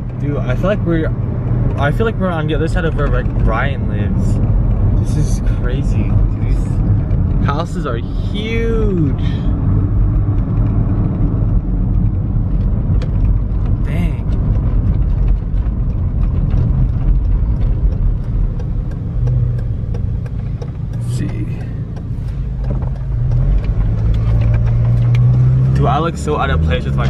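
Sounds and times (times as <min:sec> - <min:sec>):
car engine hum: 0:00.0 - 0:27.0
road rumble: 0:00.0 - 0:27.0.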